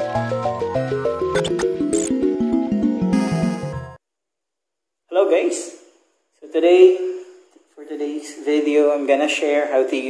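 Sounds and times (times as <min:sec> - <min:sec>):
upbeat intro music: 0:00.0 - 0:04.0.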